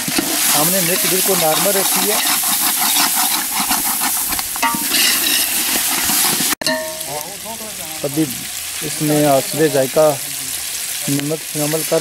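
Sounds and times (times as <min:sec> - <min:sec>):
metal spatula scraping a pot: 0:00.0 - 0:07.0
meat sizzling in a pot: 0:00.0 - 0:12.0.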